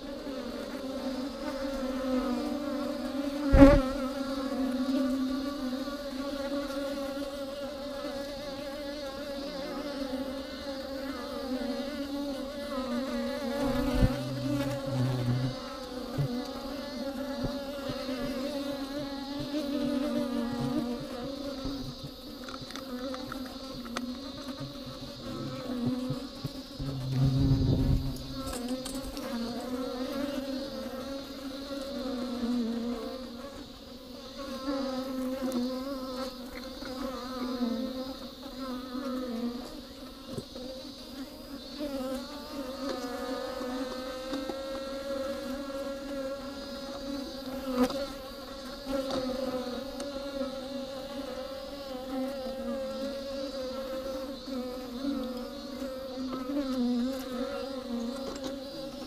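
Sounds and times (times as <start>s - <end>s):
bees buzzing: 0.0s - 59.0s
low thumps: 26.8s - 29.1s.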